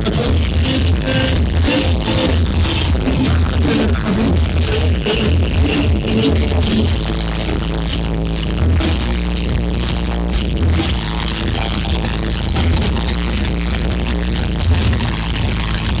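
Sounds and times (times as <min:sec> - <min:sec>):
electronic dance music over loudspeakers: 0:00.0 - 0:16.0.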